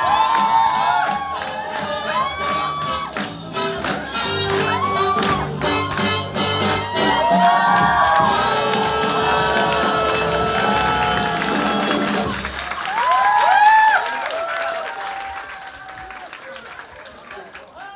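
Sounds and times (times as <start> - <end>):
crowd whooping: 0.0 - 3.3, 4.0 - 5.6, 6.6 - 16.7
swing dance music: 0.0 - 12.9
crowd applauding: 0.0 - 17.9
crowd cheering and shouting: 0.0 - 17.9.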